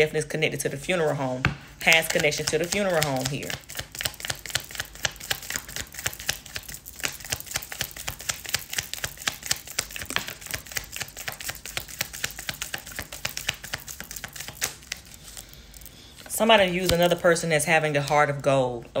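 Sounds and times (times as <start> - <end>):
cards being shuffled: 1.4 - 18.4.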